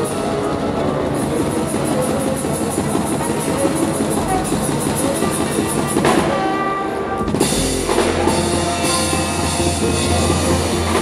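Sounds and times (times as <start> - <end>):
double bass: 0.0 - 11.0
drum kit: 0.0 - 11.0
flute: 0.0 - 11.0
jazz ensemble playing: 0.0 - 11.0
trombone: 0.0 - 11.0.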